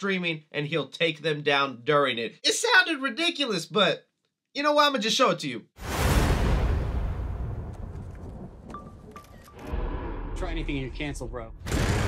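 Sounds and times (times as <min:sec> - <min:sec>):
deep rumbling hit: 0:05.8 - 0:09.0, 0:09.7 - 0:12.0.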